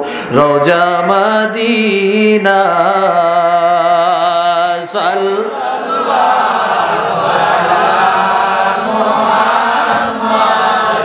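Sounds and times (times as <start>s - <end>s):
chorus of voices chanting: 4.2s - 11.0s.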